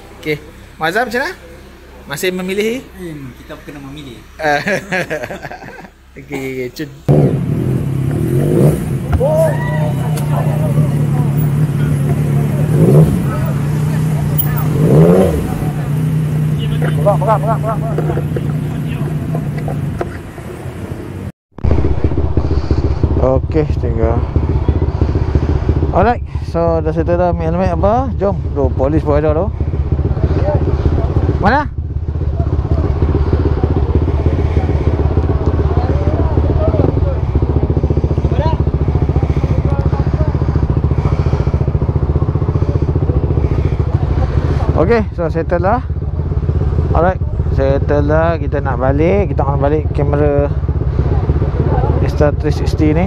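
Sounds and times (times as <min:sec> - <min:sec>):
motorcycle engine running: 0:07.1 - 0:53.0
faint voices: 0:09.0 - 0:20.0, 0:29.5 - 0:44.9.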